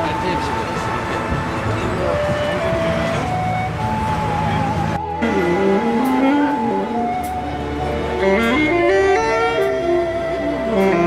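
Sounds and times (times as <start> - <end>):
slow melody of long held notes: 0.0 - 11.0
street traffic: 0.0 - 11.0.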